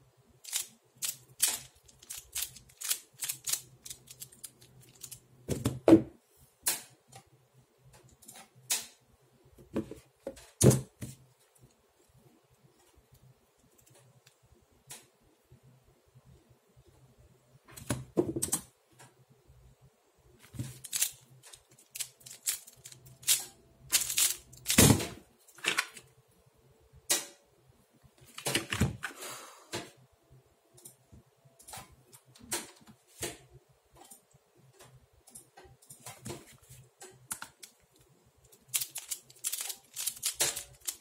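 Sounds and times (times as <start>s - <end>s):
plastic puzzle clicking: 0.4s - 5.2s, 20.5s - 24.8s, 37.0s - 41.0s.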